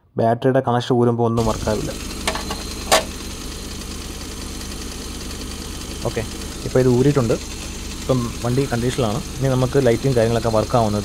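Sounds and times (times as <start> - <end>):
car engine idling: 1.4 - 11.0.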